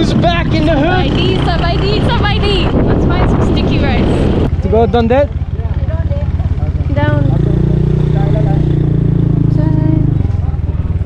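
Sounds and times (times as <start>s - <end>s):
small motorbike engine running: 0.0s - 11.0s.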